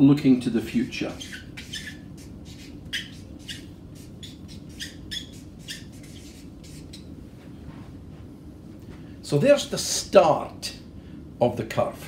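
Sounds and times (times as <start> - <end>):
marker squeaking on paper: 0.6 - 7.1.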